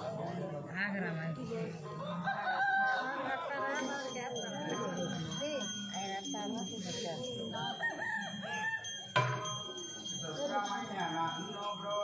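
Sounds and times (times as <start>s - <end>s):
rooster crowing: 7.8s - 8.9s.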